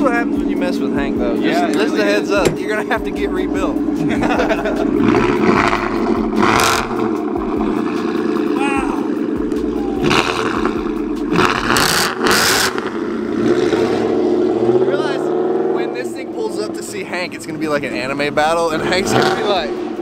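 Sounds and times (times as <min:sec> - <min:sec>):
vee-eight engine revving: 0:00.0 - 0:20.0.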